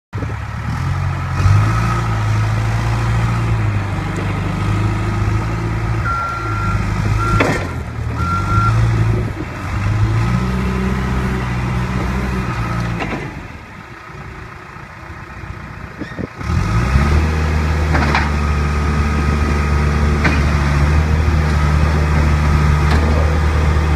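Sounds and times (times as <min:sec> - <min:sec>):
diesel engine running: 0:00.2 - 0:23.9
reverse alarm beeps: 0:06.1 - 0:07.5.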